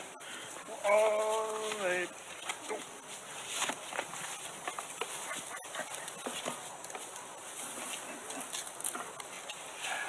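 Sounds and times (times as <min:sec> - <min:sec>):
bonobos squeaking and peeping: 0:04.6 - 0:06.5.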